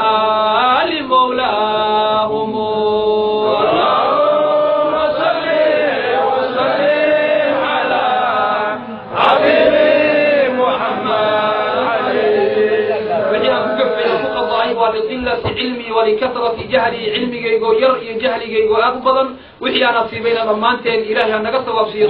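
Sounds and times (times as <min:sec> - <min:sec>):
man chanting: 0:00.0 - 0:05.5, 0:07.6 - 0:22.0.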